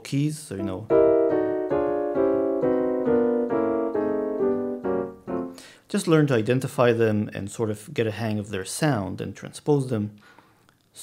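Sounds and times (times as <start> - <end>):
piano chords: 0.6 - 5.8.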